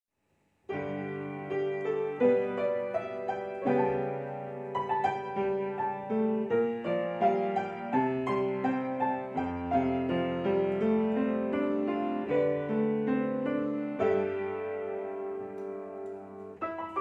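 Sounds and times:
upright piano melody: 0.7 - 17.0.

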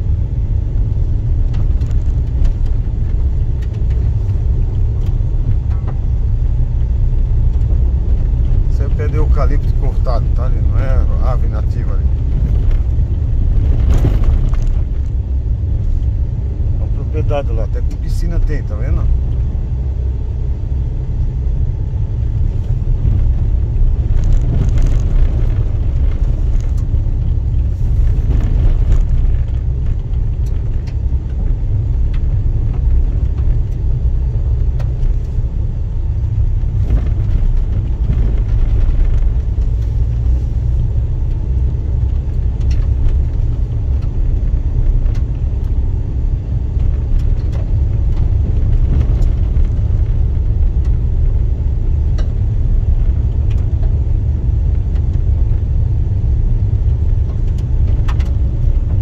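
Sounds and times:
car driving on dirt road: 0.0 - 59.0
small clicks and knocks: 57.2 - 59.0.

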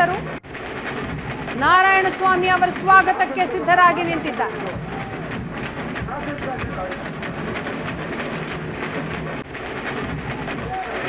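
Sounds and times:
rapid clattering: 0.0 - 11.0
crowd din: 1.2 - 11.0.

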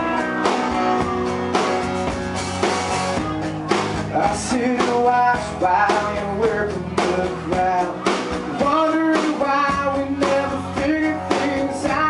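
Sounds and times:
male lead vocal: 0.0 - 1.6, 3.9 - 12.0
bass guitar: 0.0 - 12.0
drums: 0.0 - 12.0
electric guitar: 0.0 - 12.0.

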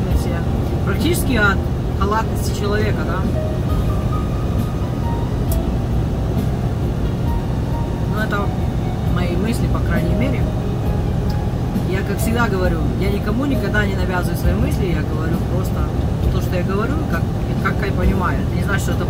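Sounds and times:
music playing: 0.0 - 19.0
truck engine and road rumble: 0.0 - 19.0.

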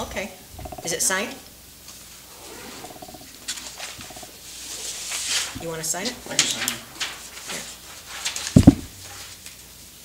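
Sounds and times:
chirping squeaks: 0.6 - 1.0, 2.5 - 3.3, 4.0 - 4.4
paper rustling: 4.8 - 9.7.

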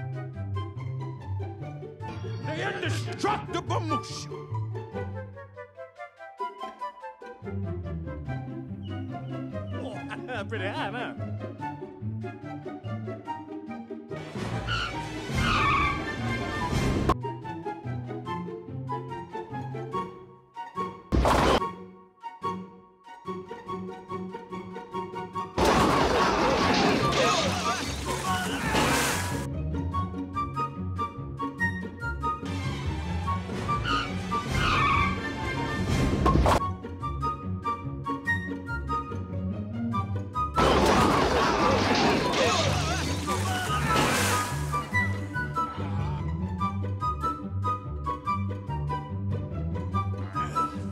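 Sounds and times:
light rhythmic background music: 0.0 - 25.6, 29.4 - 40.6, 43.9 - 50.9
cartoon music: 2.0 - 4.4, 8.9 - 11.4
crash: 25.6 - 29.5, 40.6 - 45.1.

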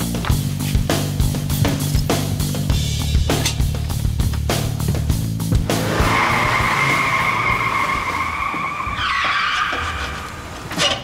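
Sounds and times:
tyres squealing in a skid: 5.7 - 11.0.

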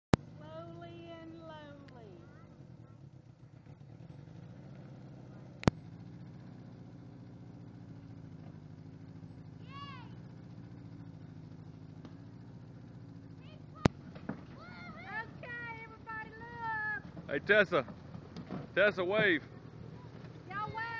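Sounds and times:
engine running at low revs: 0.0 - 20.9.

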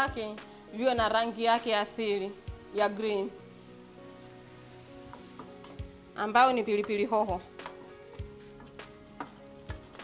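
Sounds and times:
food sizzling in a pan: 0.0 - 10.0
soft background music: 0.0 - 10.0.

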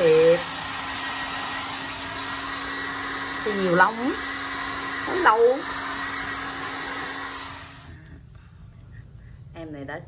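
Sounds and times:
hair dryer blowing: 0.0 - 8.0.

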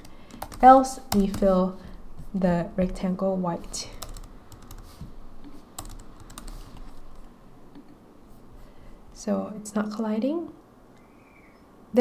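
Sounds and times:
computer keyboard keystrokes: 0.0 - 1.5, 4.0 - 4.9, 5.8 - 6.6.

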